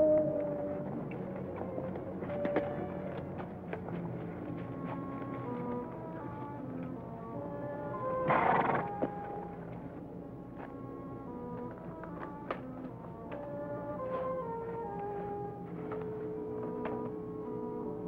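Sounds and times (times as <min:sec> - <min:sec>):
background music: 0:00.0 - 0:18.0
horse hooves clip-clopping: 0:00.4 - 0:07.1, 0:08.3 - 0:17.2.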